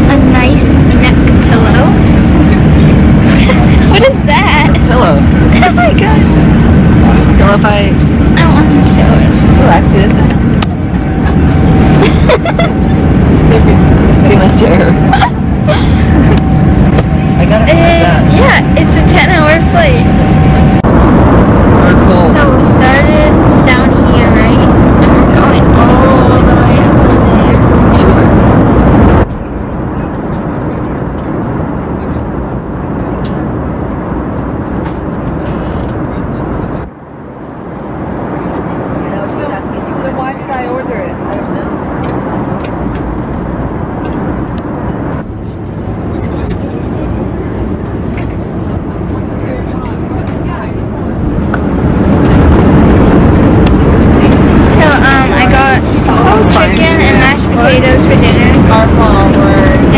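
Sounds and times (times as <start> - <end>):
airliner cabin drone: 0.0 - 59.9
indistinct voices: 0.0 - 59.9.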